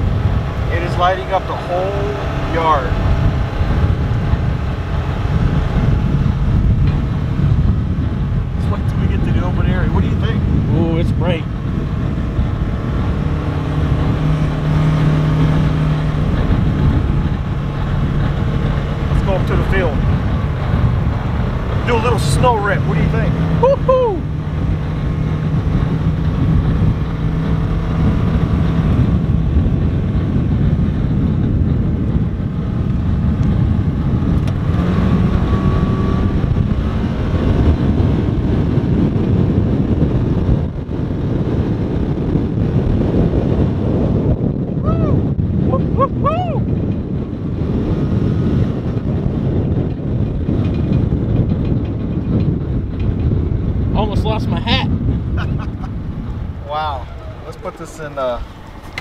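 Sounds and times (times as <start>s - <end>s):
vehicle engine running under load: 0.0s - 59.0s.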